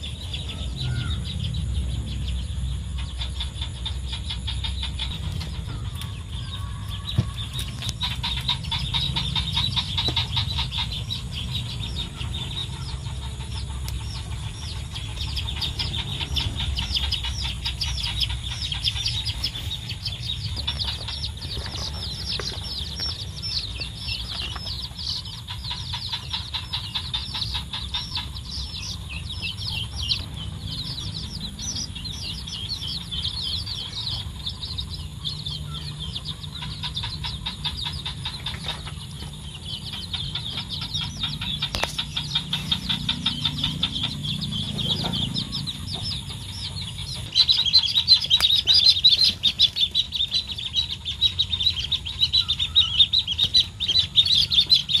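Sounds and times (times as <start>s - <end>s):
baby chicks peeping: 0.0s - 55.0s.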